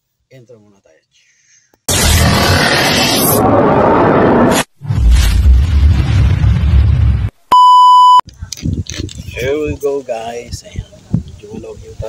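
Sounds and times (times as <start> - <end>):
low rumbling sound effect: 1.9 - 7.3
loud electronic beep: 7.5 - 8.2.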